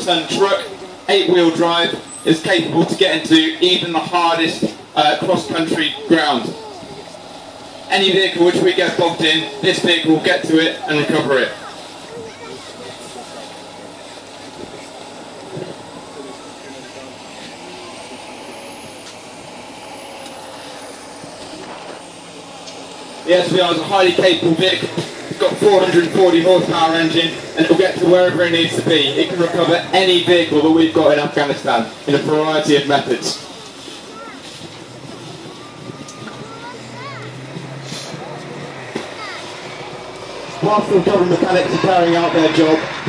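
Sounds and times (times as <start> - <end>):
diesel engines running: 0.0 - 43.0.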